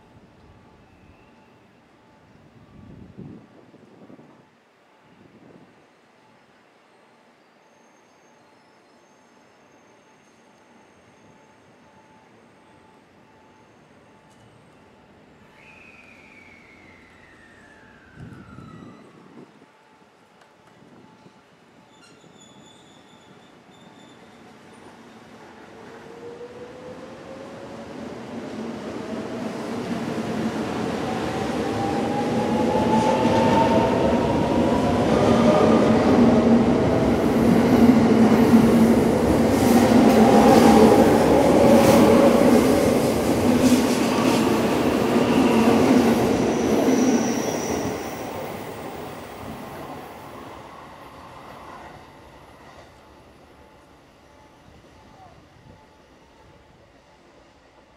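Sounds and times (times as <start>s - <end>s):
train rolling noise: 10.6s - 57.9s.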